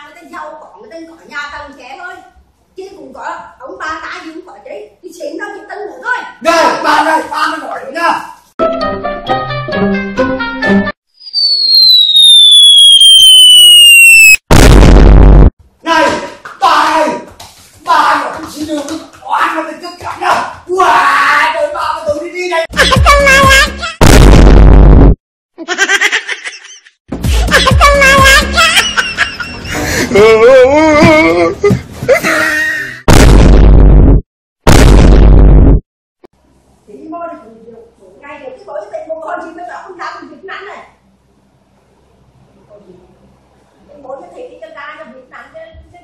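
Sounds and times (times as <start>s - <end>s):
falling whistle: 11.2s - 14.4s
loud explosion: 13.2s - 15.5s, 24.0s - 25.2s, 33.1s - 35.8s.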